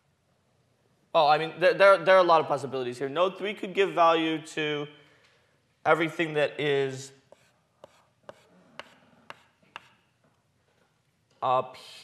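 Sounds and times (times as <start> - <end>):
chalk tapping on blackboard: 7.3 - 10.1.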